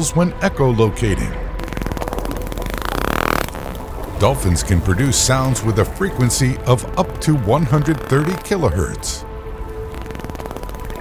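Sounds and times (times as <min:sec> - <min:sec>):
dolphin echolocation clicks: 0:09.8 - 0:11.0.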